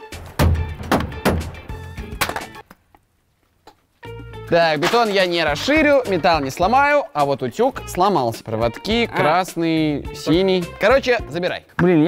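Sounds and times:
background music: 0.0s - 2.7s, 4.0s - 12.0s.

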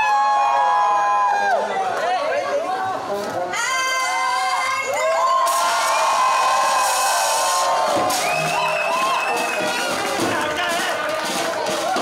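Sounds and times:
crowd cheering and whooping: 0.0s - 2.0s, 3.6s - 12.0s.

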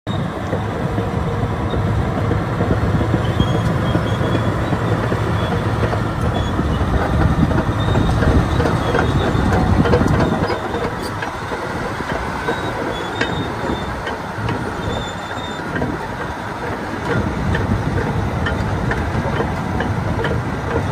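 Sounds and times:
diesel engine under load: 0.1s - 20.9s
steel tracks clanking: 0.1s - 20.9s.

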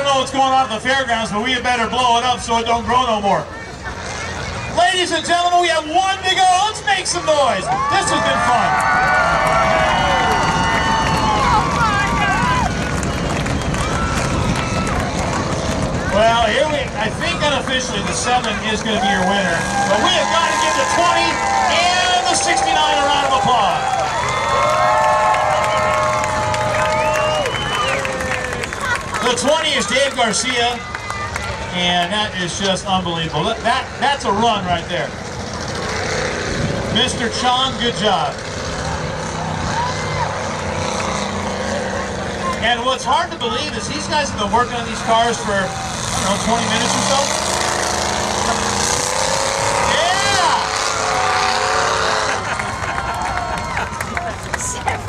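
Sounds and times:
race car engines rumbling: 0.0s - 55.0s
crowd cheering: 7.1s - 32.6s, 38.6s - 42.6s, 43.4s - 55.0s
long held whoop: 7.7s - 12.8s, 19.7s - 28.8s, 51.0s - 54.4s.

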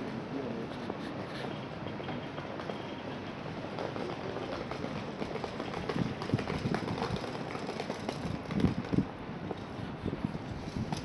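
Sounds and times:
wind rumbling on microphone: 4.9s - 11.0s.

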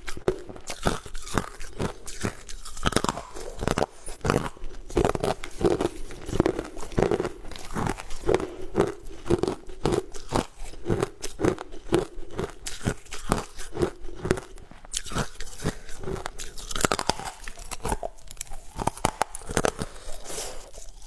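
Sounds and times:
ice cubes crunching: 0.0s - 21.0s.

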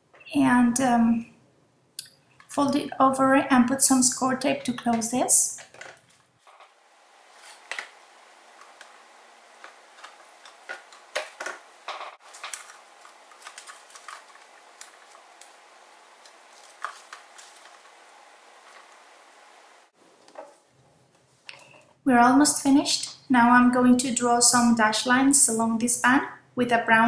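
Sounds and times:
hands handling cardstock and tape: 9.6s - 15.6s, 16.2s - 17.9s.

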